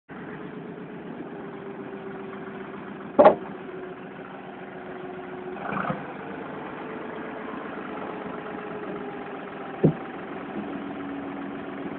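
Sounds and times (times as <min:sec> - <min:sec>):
vehicle engine idling: 0:00.1 - 0:11.9.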